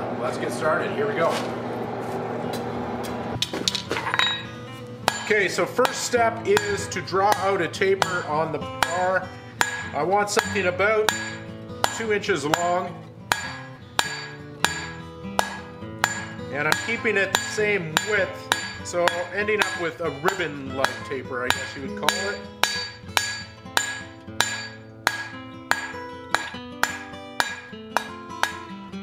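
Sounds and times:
hammer knocks on steel: 0:06.6 - 0:28.7.

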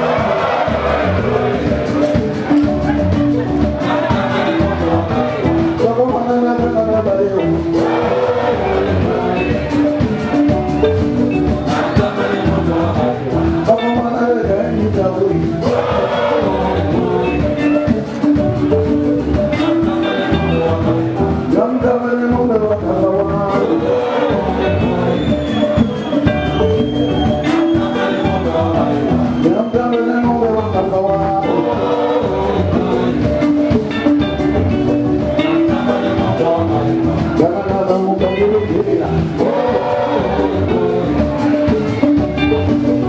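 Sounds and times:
person singing: 0:00.0 - 0:26.7, 0:27.4 - 0:43.0
bass guitar: 0:00.0 - 0:43.0
drum kit: 0:00.0 - 0:43.0
electric guitar: 0:00.0 - 0:43.0
live band playing: 0:00.0 - 0:43.0.

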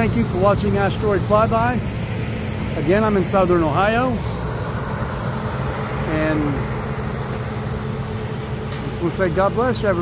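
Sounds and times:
low mechanical hum: 0:00.0 - 0:10.0
man speaking: 0:02.8 - 0:04.2, 0:06.0 - 0:06.7, 0:08.9 - 0:10.0.

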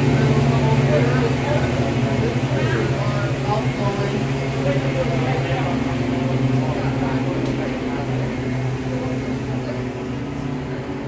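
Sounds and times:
indistinct voices: 0:00.0 - 0:11.0
low mechanical hum: 0:00.0 - 0:11.0.

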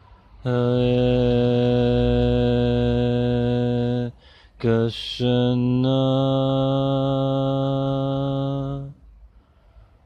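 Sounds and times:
man chanting a long held note: 0:00.4 - 0:09.0.

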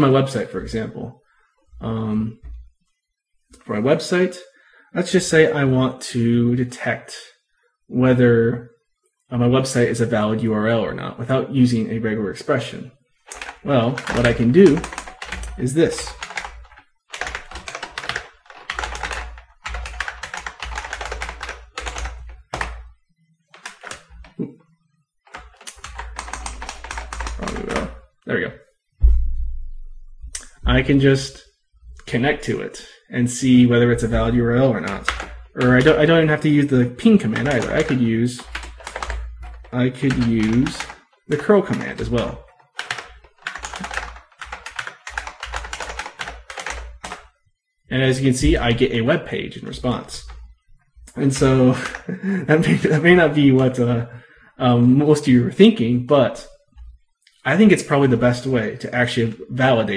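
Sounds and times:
typing on computer keyboard: 0:13.3 - 0:24.4, 0:25.2 - 0:28.0, 0:34.0 - 0:47.4, 0:49.9 - 0:53.8.

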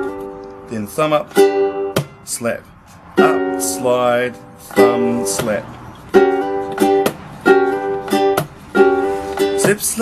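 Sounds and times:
ukulele slide strum: 0:00.0 - 0:10.0
percussive slap on strings: 0:01.9 - 0:02.2, 0:05.4 - 0:05.6, 0:06.7 - 0:07.3, 0:08.1 - 0:08.6, 0:09.6 - 0:09.8.

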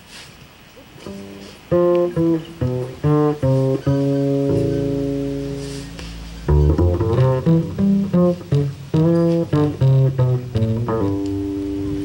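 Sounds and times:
plucked double bass: 0:01.0 - 0:12.0
jazz piano chords: 0:01.1 - 0:12.0.

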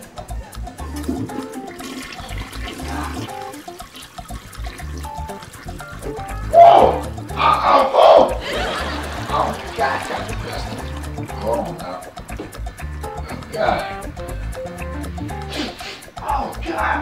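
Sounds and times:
background music with low beat: 0:00.0 - 0:17.0
toilet flushing: 0:00.4 - 0:14.0.

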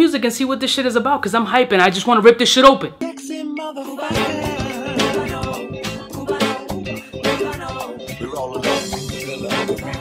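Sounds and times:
beat with bass: 0:04.1 - 0:10.0.

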